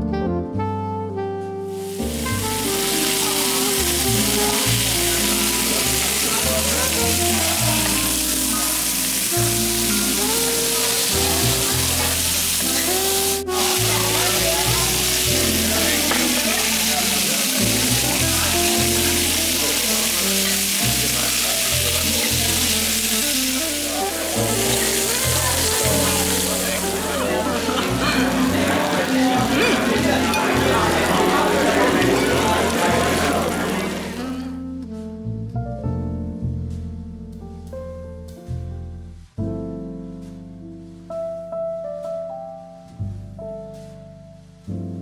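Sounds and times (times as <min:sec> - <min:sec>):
background music: 0:00.0 - 0:45.0
steak sizzling on hot platter: 0:01.8 - 0:34.2.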